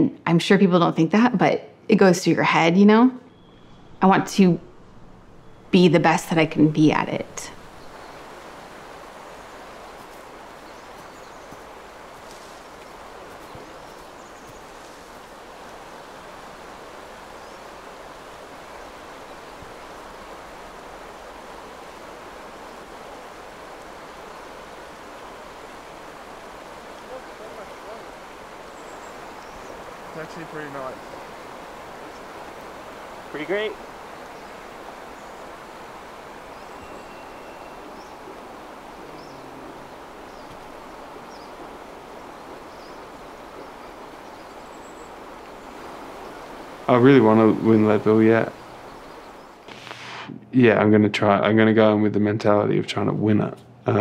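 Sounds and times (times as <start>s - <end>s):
river water rushing: 4.7s - 50.3s.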